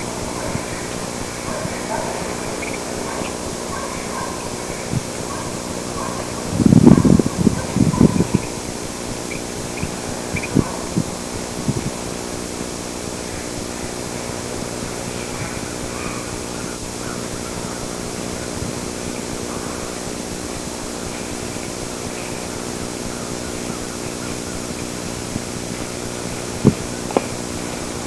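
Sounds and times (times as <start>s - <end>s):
steady hum: 0.0s - 28.0s.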